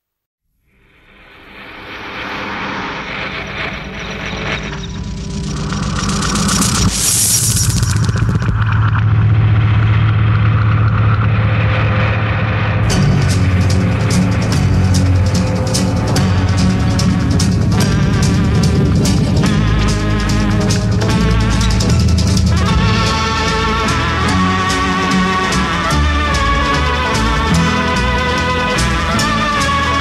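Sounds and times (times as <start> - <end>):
low bass note: 2.8 - 30.0
drum and cymbal hits: 11.4 - 30.0
rock song intro: 11.9 - 30.0.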